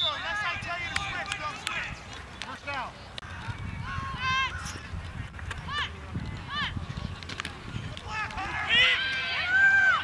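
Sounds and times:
spectators yelling: 8.1 - 10.0
long drawn-out shout: 8.4 - 10.0.

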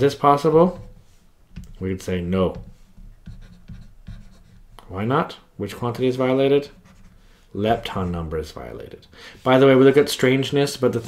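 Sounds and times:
stylus writing on tablet: 2.5 - 4.7.

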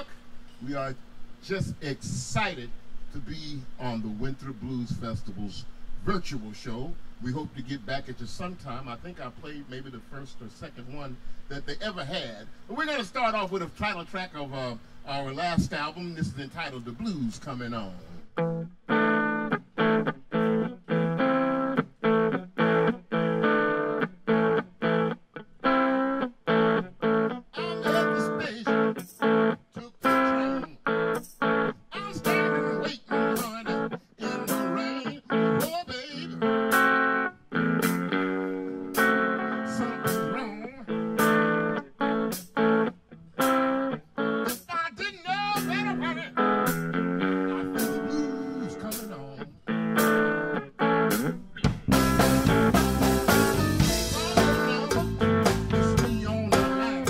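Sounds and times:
electric blues guitar chords: 0.0 - 57.0.

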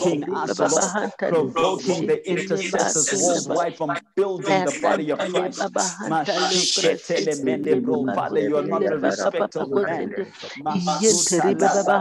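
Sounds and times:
person praying aloud: 0.0 - 12.0.

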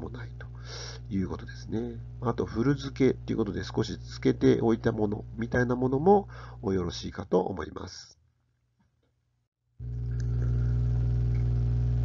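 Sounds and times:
loud steady low hum: 0.0 - 7.0, 9.8 - 12.0.

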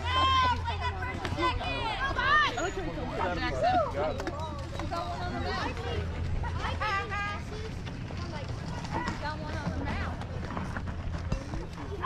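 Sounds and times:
spectators chattering: 0.0 - 12.0.

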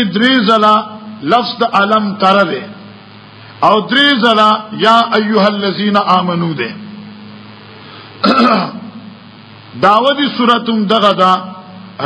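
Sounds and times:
faint low hum: 0.0 - 12.0
man clearing his throat: 8.2 - 8.9.

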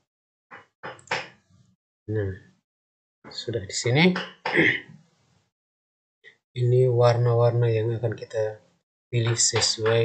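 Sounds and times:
man speaking: 2.1 - 2.4, 3.3 - 4.9, 6.6 - 8.6, 9.2 - 10.0
man clearing his throat: 4.5 - 4.9.

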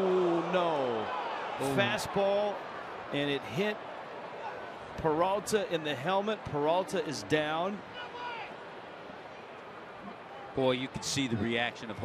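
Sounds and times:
voice: 1.6 - 2.5.

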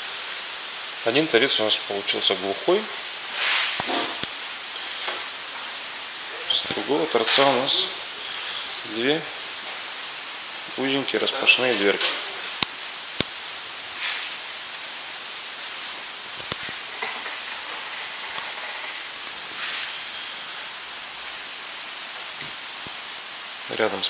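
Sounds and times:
rain on a plastic roof: 0.0 - 24.0.

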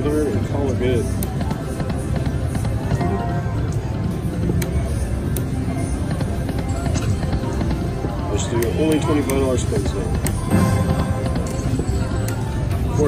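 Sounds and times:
slot machine game music: 10.3 - 13.0.

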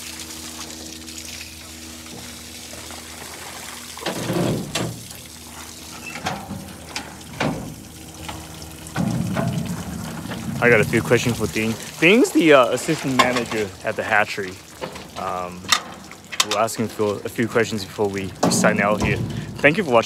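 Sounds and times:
steady low hum: 0.0 - 20.0
water pouring and splashing: 0.0 - 20.0.

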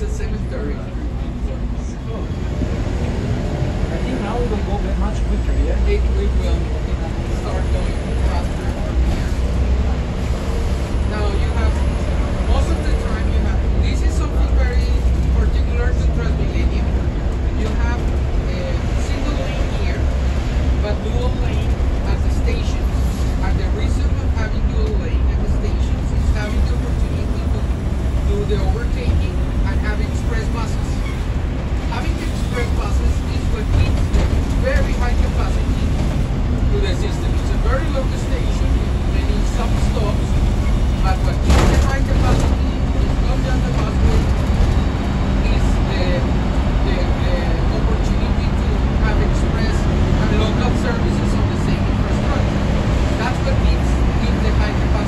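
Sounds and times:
bus engine and road rumble: 0.0 - 55.0
indistinct voices: 0.0 - 55.0.

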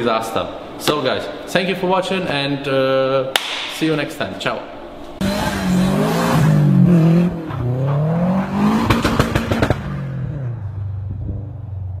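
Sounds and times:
sharp cracks: 3.3 - 4.1, 8.8 - 10.0
car engine revving: 5.2 - 12.0.

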